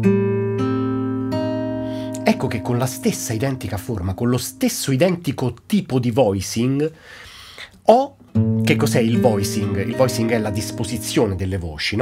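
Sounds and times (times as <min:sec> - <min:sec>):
acoustic guitar chord ringing: 0:00.0 - 0:04.2, 0:08.3 - 0:11.4
guitar notes plucked: 0:00.0 - 0:04.6, 0:08.2 - 0:11.5.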